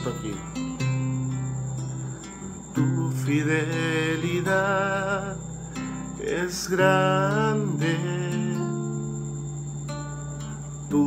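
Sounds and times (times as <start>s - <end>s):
classical guitar chord: 0.0s - 9.2s
faint high-pitched whine: 0.0s - 11.0s
person singing: 2.8s - 5.4s, 6.2s - 8.9s.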